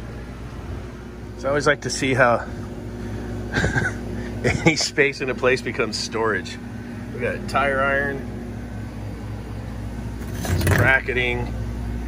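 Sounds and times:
refrigeration equipment humming: 0:00.0 - 0:12.0.

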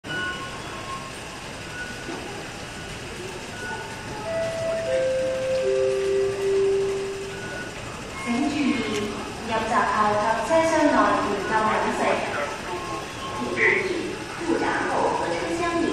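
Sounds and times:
station crowd hubbub: 0:00.0 - 0:15.9.

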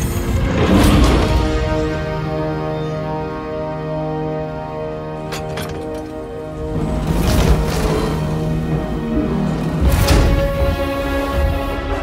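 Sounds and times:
held orchestral chords: 0:00.0 - 0:12.0.

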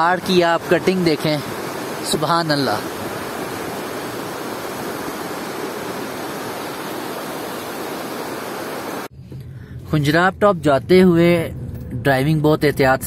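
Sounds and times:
stream flowing over rocks: 0:00.0 - 0:09.1.

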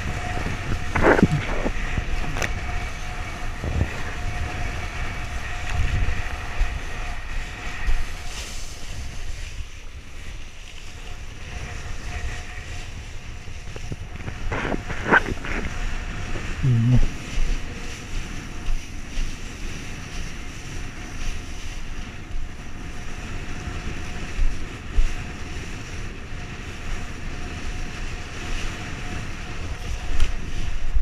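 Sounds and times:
water rushing under board: 0:00.0 - 0:31.0
waves slapping board: 0:00.0 - 0:31.0
wind buffeting microphone: 0:00.0 - 0:31.0.

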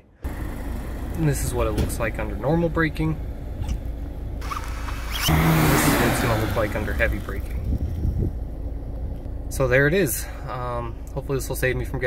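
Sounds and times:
car rumbling at low speed: 0:00.0 - 0:12.0.

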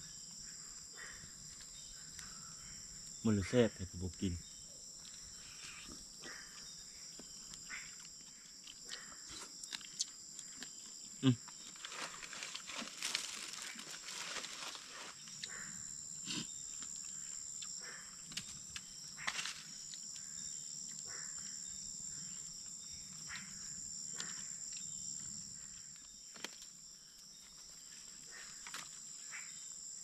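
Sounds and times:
insects chirring: 0:00.0 - 0:30.0.

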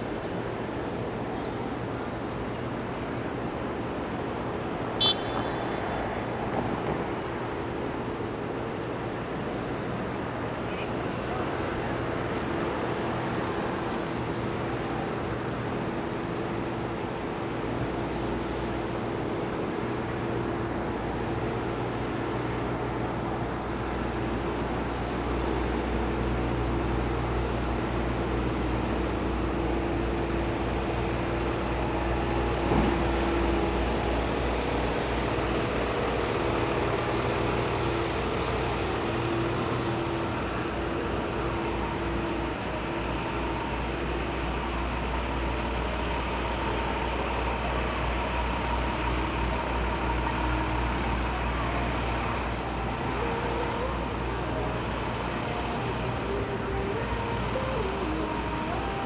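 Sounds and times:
engine hum: 0:00.0 - 0:59.0
passing road vehicles: 0:00.0 - 0:59.0
idling trucks rumbling: 0:06.3 - 0:59.0.

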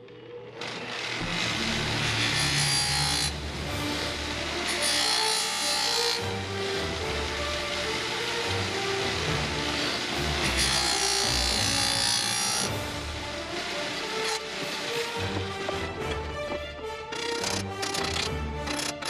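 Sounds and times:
background music: 0:00.0 - 0:19.0
bench grinder grinding metal: 0:00.6 - 0:19.0.

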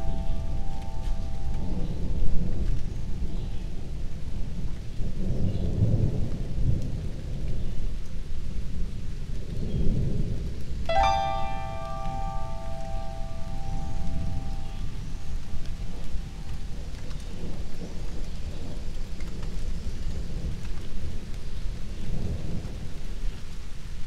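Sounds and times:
single musical note: 0:00.0 - 0:02.6, 0:10.9 - 0:16.7
rumble of thunder: 0:00.0 - 0:10.9, 0:14.0 - 0:23.5
rain falling: 0:00.0 - 0:24.0.

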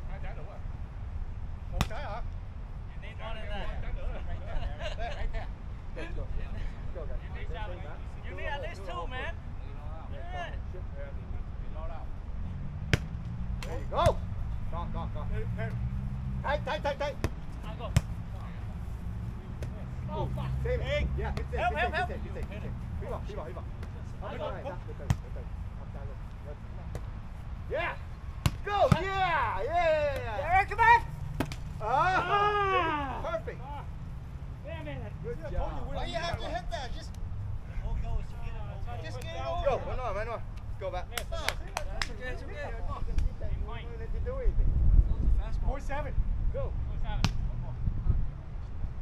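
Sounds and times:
players' voices and calls: 0:00.0 - 0:47.8
hands slapping volleyball: 0:12.9 - 0:14.2, 0:31.3 - 0:31.7, 0:40.5 - 0:42.2.

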